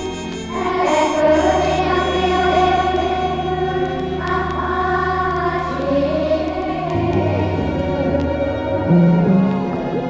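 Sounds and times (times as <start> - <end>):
choir singing held chords: 0.0 - 10.0
low drone: 0.0 - 10.0.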